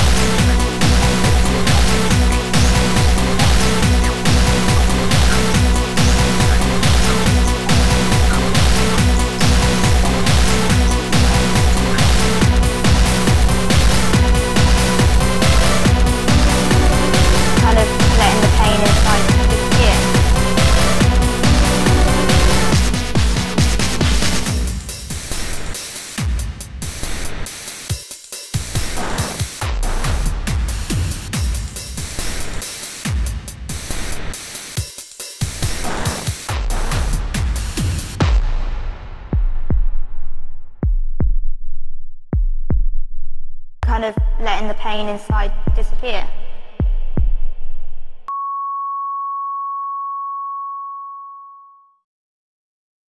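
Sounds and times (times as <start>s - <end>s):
dark electronic music: 0.0s - 25.6s
high-pitched electronic tone: 48.3s - 52.0s.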